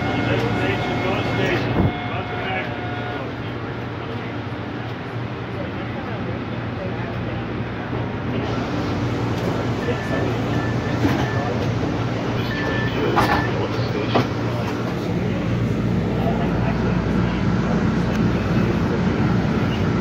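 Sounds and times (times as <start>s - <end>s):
train motors and wheels rumbling: 0.0s - 20.0s
door warning beeps: 9.8s - 11.6s, 12.4s - 13.7s
train doors clacking shut: 12.6s - 15.0s.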